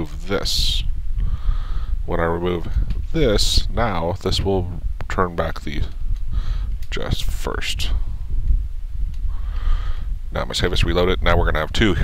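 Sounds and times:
steady low rumble: 0.0s - 12.0s
person breathing out: 1.2s - 2.0s, 6.3s - 6.8s, 9.3s - 10.2s.

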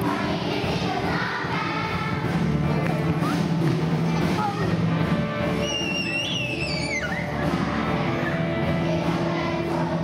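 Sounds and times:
children's choir singing with accompaniment: 0.0s - 10.0s.

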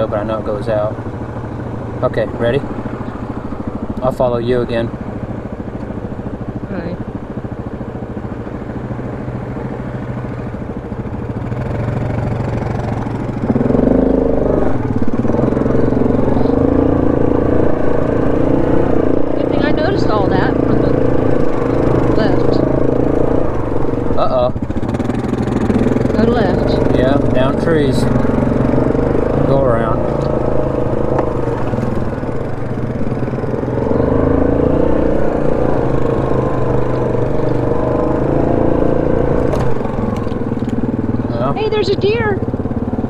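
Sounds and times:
atv engine running: 0.0s - 43.0s
second atv engine running: 0.0s - 43.0s.

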